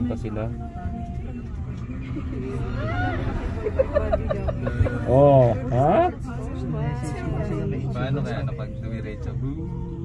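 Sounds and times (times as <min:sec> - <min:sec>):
cable car low rumble: 0:00.0 - 0:10.0
faint voices: 0:00.0 - 0:10.0.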